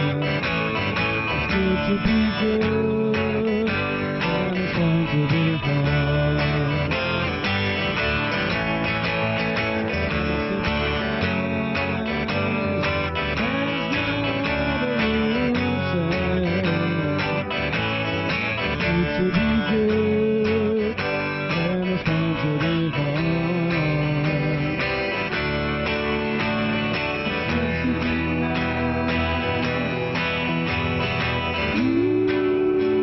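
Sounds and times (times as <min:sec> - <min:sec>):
electric bass: 0:00.0 - 0:33.0
electric guitars: 0:00.0 - 0:33.0
tambourine keeping time: 0:00.0 - 0:33.0.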